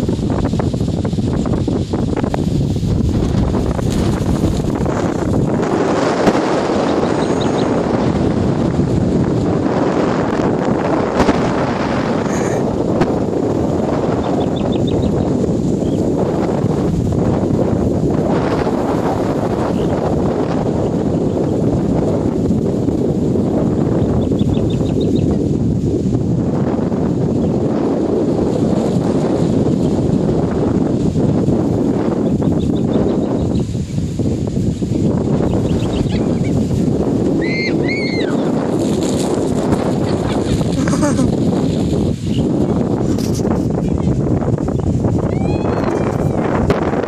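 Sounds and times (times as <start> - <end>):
wind blowing across microphone: 0.0 - 47.0.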